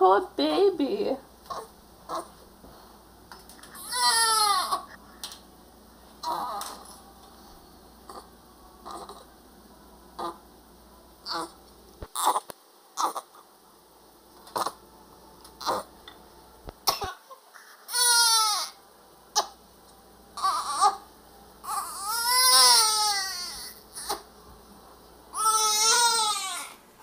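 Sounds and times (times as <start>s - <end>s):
baby crying in loud wails: 3.8s - 4.9s, 6.2s - 6.9s, 11.2s - 11.6s, 17.8s - 18.8s, 20.4s - 21.0s, 21.6s - 24.2s, 25.3s - 26.8s.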